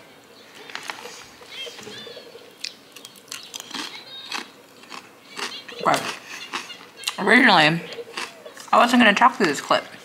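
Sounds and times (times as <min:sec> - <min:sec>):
snack being bitten and chewed: 0:02.6 - 0:07.2, 0:08.1 - 0:08.7.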